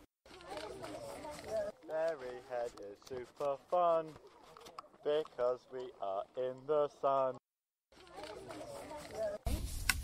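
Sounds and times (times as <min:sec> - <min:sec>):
children chattering: 0:00.3 - 0:05.1, 0:08.0 - 0:09.5.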